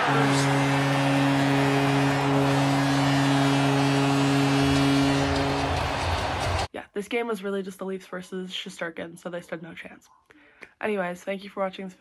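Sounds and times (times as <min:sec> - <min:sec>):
crowd cheering: 0:00.0 - 0:06.7
goal horn blast: 0:00.0 - 0:06.7.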